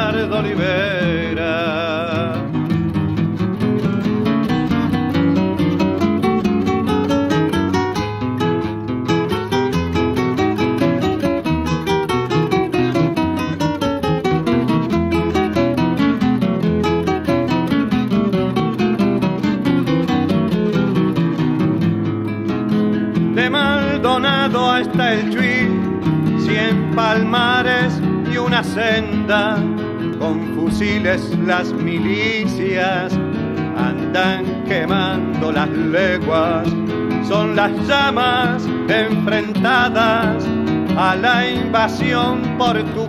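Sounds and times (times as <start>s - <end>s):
person singing with vibrato: 0.0s - 2.6s, 23.3s - 43.0s
acoustic guitar plucking: 0.0s - 43.0s.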